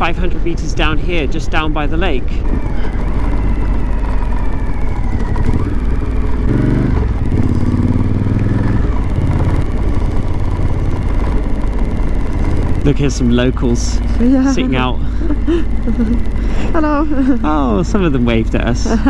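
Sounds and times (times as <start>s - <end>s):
motorcycle engine running: 0.0s - 19.0s
wind and road noise: 0.0s - 19.0s.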